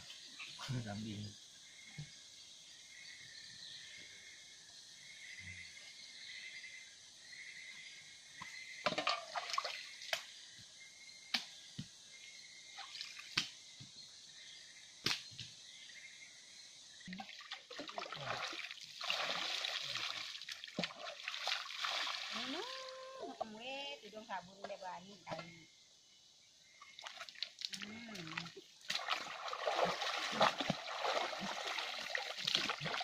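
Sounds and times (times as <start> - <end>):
water splashing and dripping: 8.9 - 10.3, 17.0 - 23.1, 26.8 - 33.0
water pouring: 17.2 - 22.9, 27.0 - 33.0.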